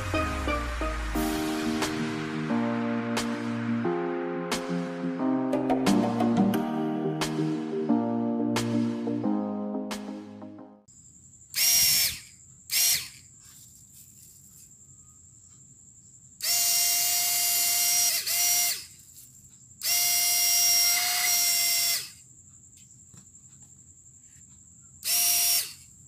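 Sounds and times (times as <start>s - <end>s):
small fan motor whine: 11.5s - 13.4s, 16.4s - 22.8s, 24.7s - 26.0s.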